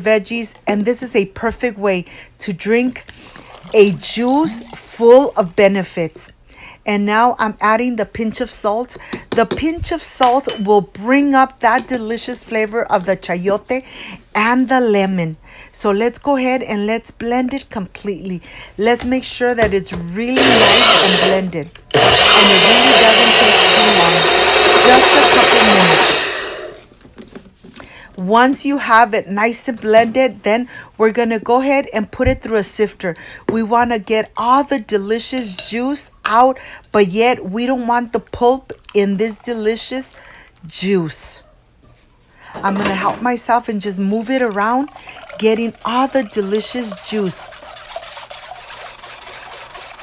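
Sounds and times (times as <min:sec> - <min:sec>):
juice trickling through sieve: 0:03.1 - 0:05.0, 0:44.3 - 0:50.0
blender motor: 0:20.4 - 0:26.8, 0:46.4 - 0:50.0
utensil scratching mesh: 0:46.5 - 0:50.0.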